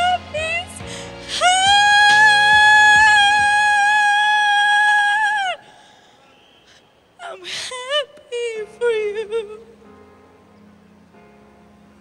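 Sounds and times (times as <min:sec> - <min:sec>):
breathy gasp: 0:05.6 - 0:06.9.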